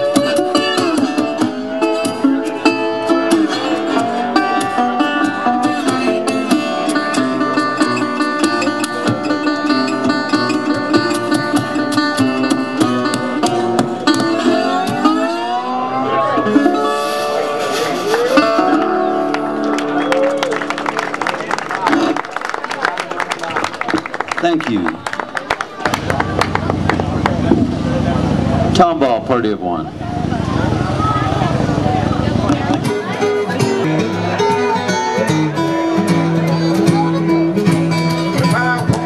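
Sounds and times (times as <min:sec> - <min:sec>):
harmonica playing: 0:00.0 - 0:20.2
fingerpicked acoustic guitar: 0:00.0 - 0:21.2, 0:30.3 - 0:39.0.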